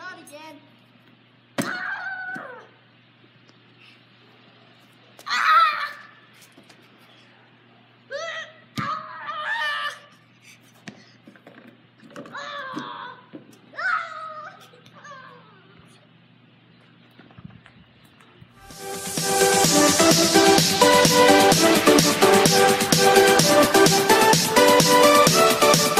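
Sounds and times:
faint outdoor background: 0.0 - 19.7
boy wailing: 8.1 - 10.1, 12.3 - 15.9
child yelling: 12.3 - 15.8.

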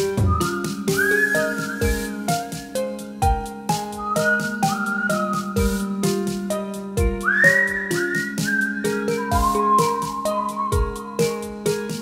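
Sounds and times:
drum loop: 0.0 - 12.0
keyboard chords: 0.0 - 12.0
person whistling a melody: 0.0 - 12.0.

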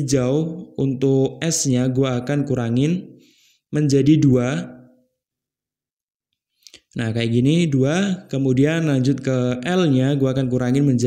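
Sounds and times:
man speaking voice-over: 0.0 - 3.0, 3.8 - 4.7, 7.0 - 11.0.

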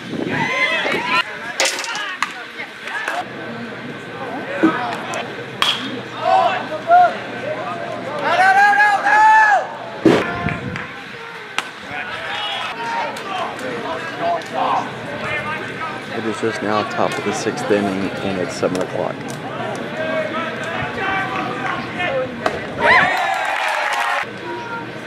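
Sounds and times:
people shouting and calling out: 0.2 - 3.3, 4.1 - 25.0.

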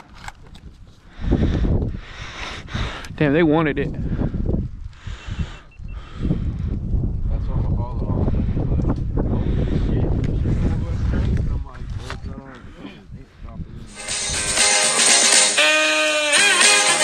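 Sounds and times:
wind buffeting microphone: 0.0 - 14.6.

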